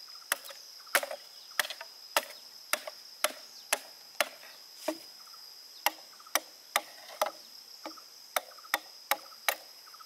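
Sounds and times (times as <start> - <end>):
machete chopping bamboo: 0.3 - 5.1, 5.8 - 9.8.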